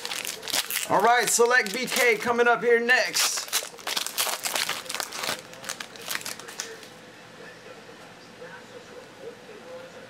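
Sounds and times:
foil wrapper crinkling: 0.0 - 7.0.

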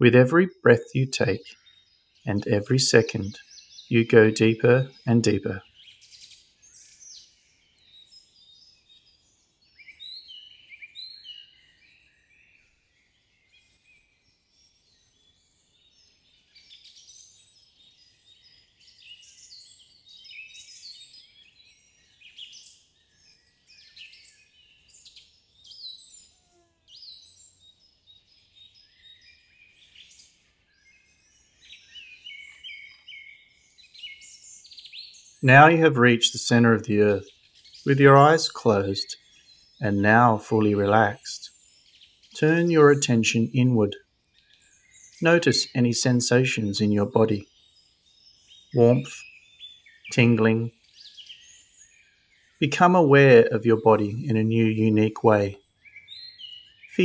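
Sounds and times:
small birds chirping and trilling: 0.0 - 57.0.

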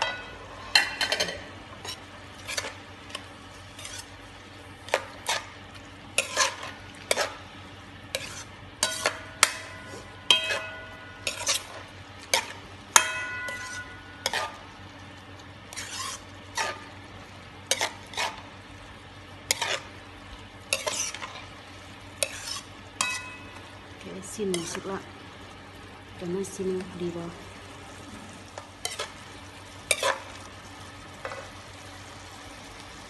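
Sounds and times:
meat sizzling in a wok: 0.0 - 33.0
utensil scraping and knocking pan: 8.2 - 11.8, 12.4 - 14.6.

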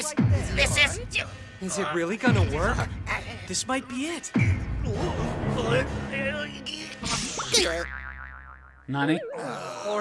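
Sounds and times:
cartoon boing sound effect: 7.5 - 9.7
wavering tone: 7.8 - 10.0.

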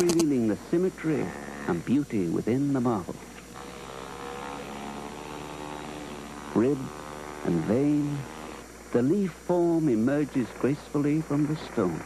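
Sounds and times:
power carving tool cutting marble: 0.0 - 12.0.

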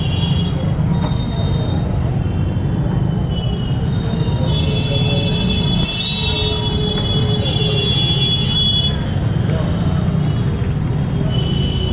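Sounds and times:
motorcycle and scooter engines: 0.0 - 11.9.

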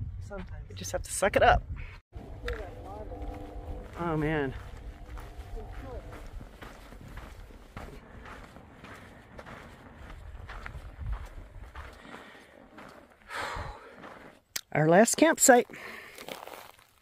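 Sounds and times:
footsteps on dirt trail: 2.1 - 17.0
steady low rumble: 2.2 - 11.9.

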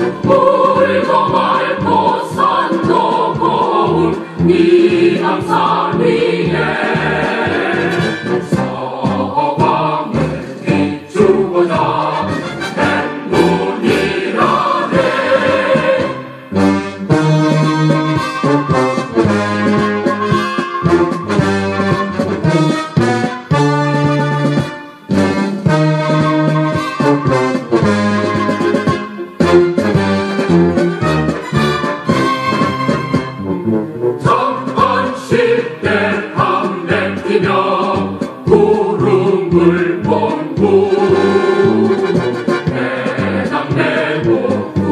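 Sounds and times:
choir singing: 0.0 - 21.3, 34.2 - 44.9
marching beat: 0.0 - 44.9.

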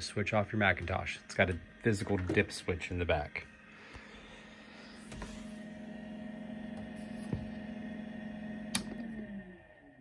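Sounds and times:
computer humming: 0.0 - 10.0
power switch click: 8.7 - 9.1.

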